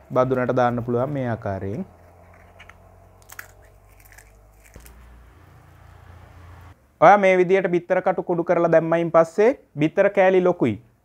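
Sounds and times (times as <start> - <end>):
eggshell crackling: 1.9 - 5.2.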